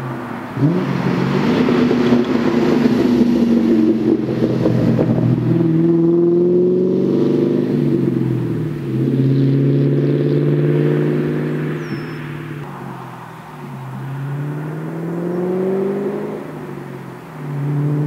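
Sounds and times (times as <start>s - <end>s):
car engine downshifting: 0.0s - 18.0s.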